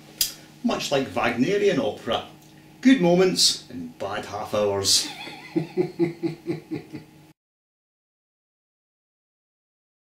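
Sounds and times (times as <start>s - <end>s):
man laughing: 5.0s - 7.2s.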